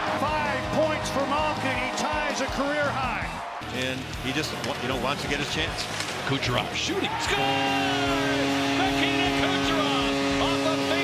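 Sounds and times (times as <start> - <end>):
goal horn long note: 7.4 - 11.0.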